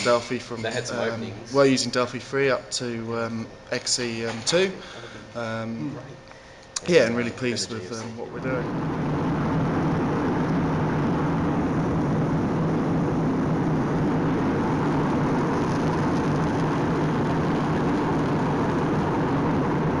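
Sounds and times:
airliner cabin engine rush: 8.4 - 20.0.

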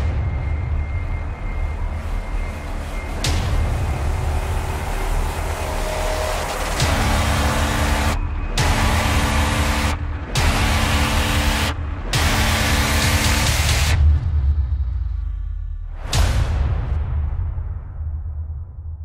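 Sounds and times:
deep rumble: 0.0 - 19.0.

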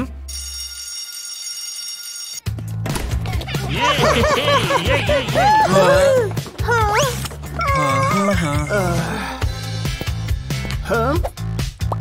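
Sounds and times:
electric school bell ringing: 0.3 - 2.5.

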